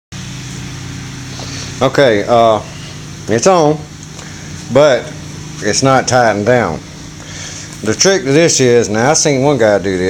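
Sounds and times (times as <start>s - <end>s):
low mechanical hum: 0.2s - 10.0s
man speaking: 1.8s - 3.9s, 4.7s - 6.9s, 7.8s - 10.0s.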